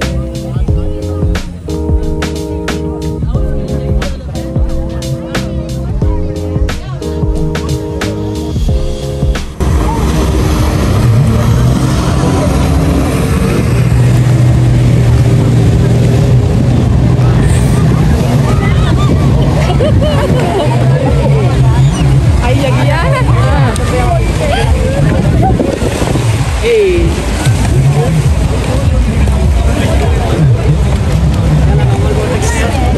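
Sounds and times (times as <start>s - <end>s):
background music: 0.0s - 25.4s
jet ski engine humming: 0.0s - 32.9s
people's voices: 0.0s - 32.9s.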